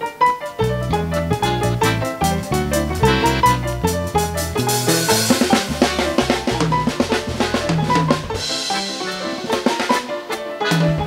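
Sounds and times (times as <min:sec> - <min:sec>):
stage piano: 0:00.0 - 0:11.0
busy drumming: 0:00.3 - 0:11.0
bass guitar: 0:00.5 - 0:09.9, 0:10.7 - 0:11.0
button accordion: 0:01.4 - 0:03.7.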